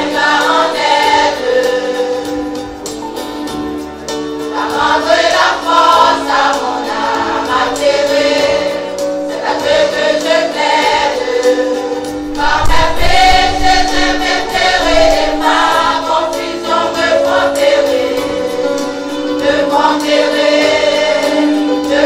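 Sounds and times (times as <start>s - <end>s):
mixed choir singing a hymn: 0.0s - 2.7s, 4.5s - 22.0s
deep low rumble: 12.3s - 16.1s.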